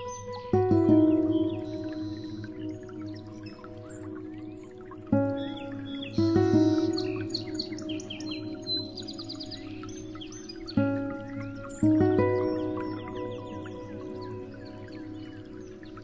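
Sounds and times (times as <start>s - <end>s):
bird chirps: 0.0s - 16.0s
soft sustained chords: 0.0s - 16.0s.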